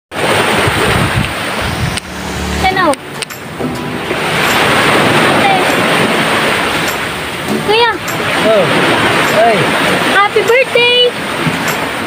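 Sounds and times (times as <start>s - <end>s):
surf washing: 0.1s - 12.0s
wind buffeting microphone: 0.2s - 12.0s.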